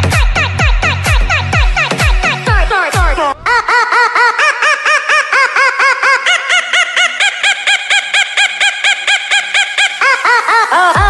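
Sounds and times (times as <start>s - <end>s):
music: 0.0s - 3.4s, 10.7s - 11.0s
cartoon squawk-like calls: 3.4s - 11.0s.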